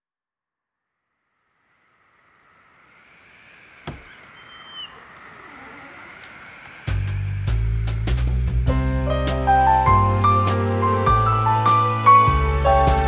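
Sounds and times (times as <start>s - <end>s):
high whistling tones: 2.9s - 8.5s
song accompaniment with bass: 6.9s - 13.0s.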